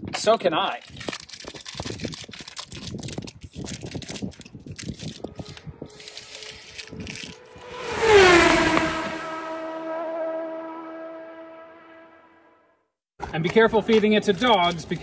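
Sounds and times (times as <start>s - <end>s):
plastic wrapper crinkling: 0.8s - 7.5s
whoosh sliding down in pitch: 5.2s - 12.5s.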